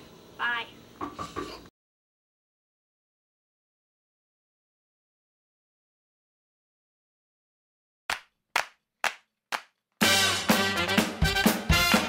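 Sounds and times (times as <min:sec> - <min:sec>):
music: 0:10.0 - 0:12.0.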